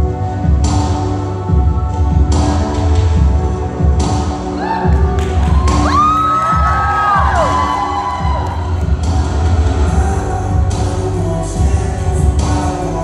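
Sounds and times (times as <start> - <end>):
dance music with heavy bass: 3.2 - 13.0
audience cheering and whooping: 4.6 - 9.1.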